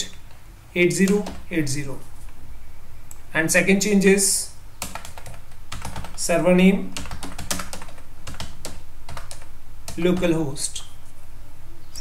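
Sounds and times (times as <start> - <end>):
computer keyboard typing: 1.0 - 1.5, 4.8 - 6.2, 7.0 - 10.4.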